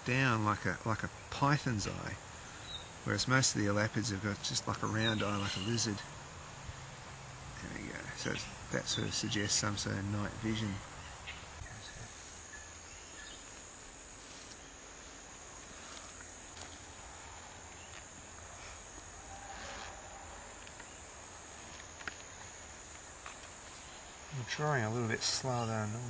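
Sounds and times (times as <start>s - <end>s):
high-pitched insect chorus: 0.0s - 26.0s.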